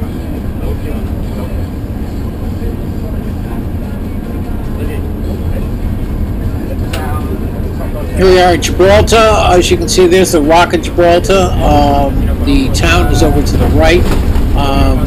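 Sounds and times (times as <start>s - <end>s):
bus engine rumble and road noise: 0.0s - 15.0s
faint passenger voices: 0.0s - 15.0s.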